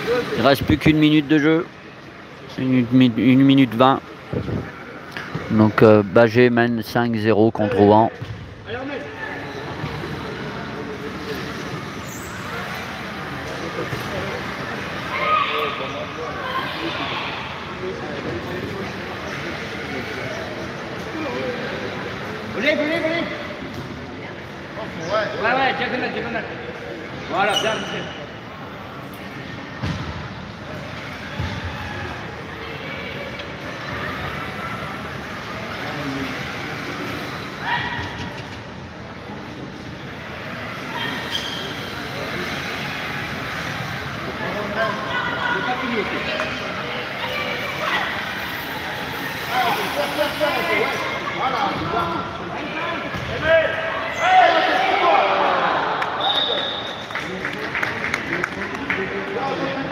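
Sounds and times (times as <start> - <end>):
voices calling out in echoing hall: 0.0 - 59.9.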